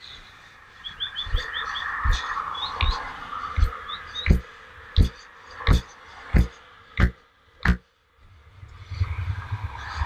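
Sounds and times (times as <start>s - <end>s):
evenly spaced thumps: 3.6s - 7.8s.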